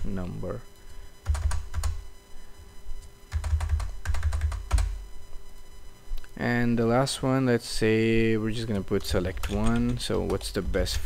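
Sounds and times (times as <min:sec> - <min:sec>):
typing on computer keyboard: 0:01.2 - 0:02.0, 0:03.3 - 0:05.0, 0:09.0 - 0:10.5.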